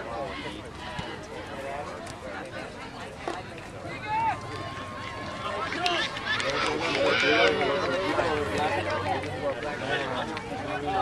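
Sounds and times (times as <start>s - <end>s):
people shouting outdoors: 3.9s - 8.5s.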